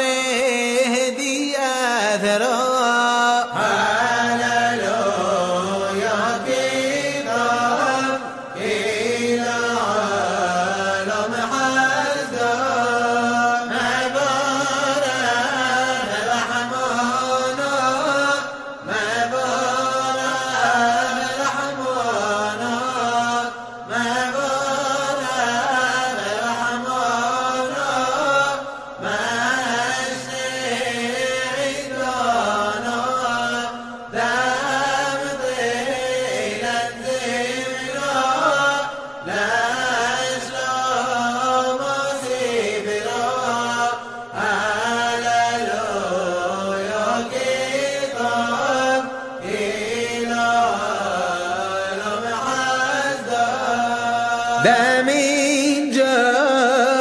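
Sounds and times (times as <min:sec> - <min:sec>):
man chanting: 0:00.0 - 0:57.0.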